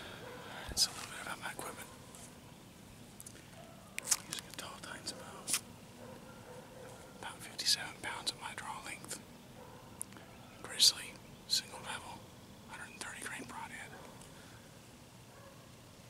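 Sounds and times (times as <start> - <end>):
man whispering: 0.4 - 1.9, 4.2 - 5.6, 7.2 - 9.2, 10.6 - 14.0.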